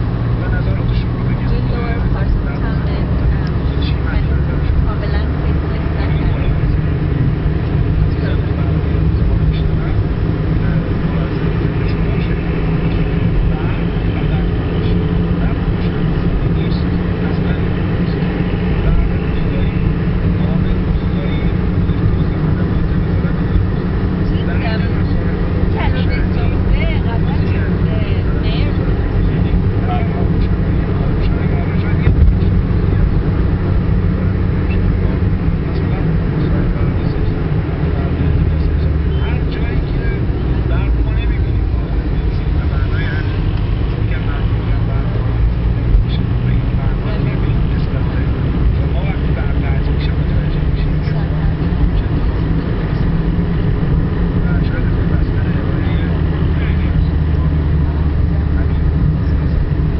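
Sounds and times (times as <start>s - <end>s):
car engine and tyre rumble: 0.0s - 59.9s.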